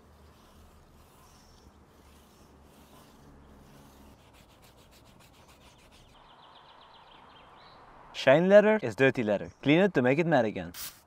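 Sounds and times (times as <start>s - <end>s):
hand rubbing tyre sidewall: 0.0s - 6.2s.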